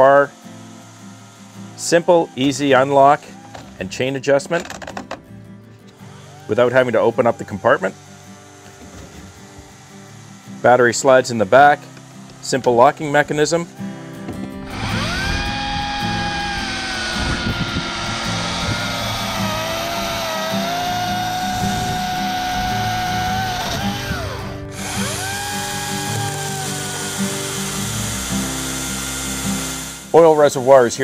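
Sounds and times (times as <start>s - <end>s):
electric chainsaw cutting log: 0.0s - 31.0s.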